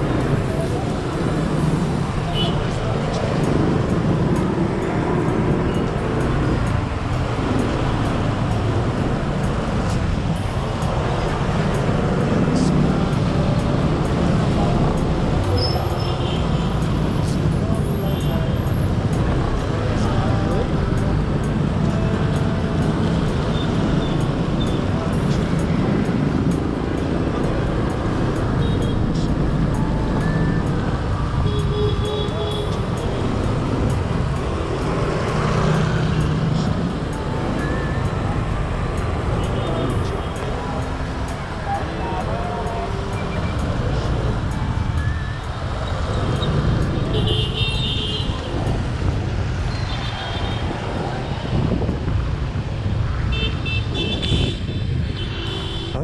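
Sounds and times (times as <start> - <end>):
rumble of motorbike engines: 0.0 - 56.0
street voices: 0.0 - 56.0
tyres on wet road: 0.0 - 56.0.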